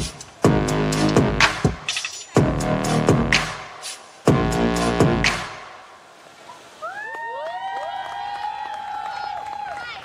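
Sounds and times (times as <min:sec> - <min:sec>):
audience cheering and whooping: 0:06.8 - 0:10.0.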